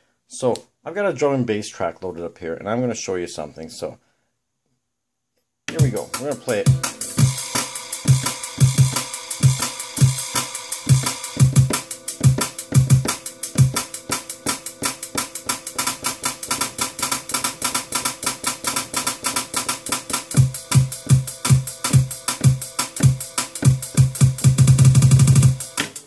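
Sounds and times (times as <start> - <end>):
drum and bass track: 5.7 - 26.0
fast kick and hi-hat beat: 5.7 - 26.0.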